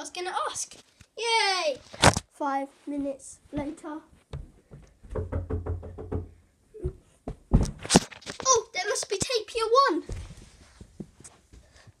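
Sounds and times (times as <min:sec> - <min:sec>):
quick knocks: 0:04.3 - 0:08.1.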